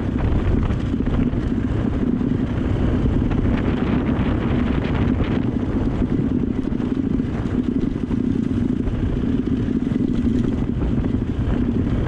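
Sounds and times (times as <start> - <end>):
dirt bike engine running: 0.0 - 12.0
wind buffeting microphone: 0.0 - 12.0.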